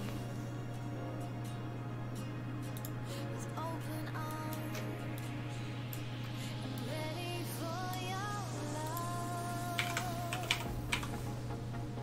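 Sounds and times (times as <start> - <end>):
computer keyboard typing: 9.7 - 11.2.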